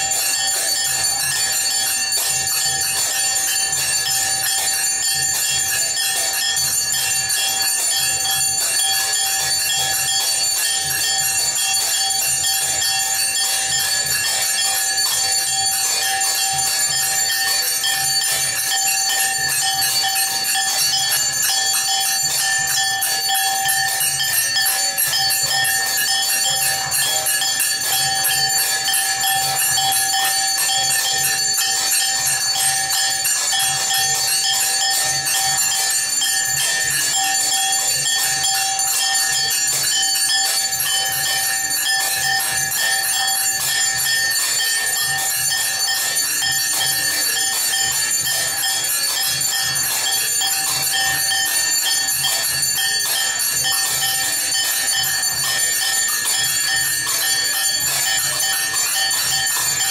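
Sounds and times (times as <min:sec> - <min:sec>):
temple bells ringing: 0:00.0 - 0:59.9.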